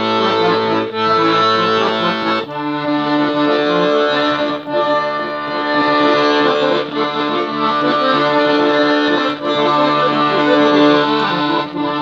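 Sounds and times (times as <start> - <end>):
piano accordion playing held chords: 0.0 - 12.0.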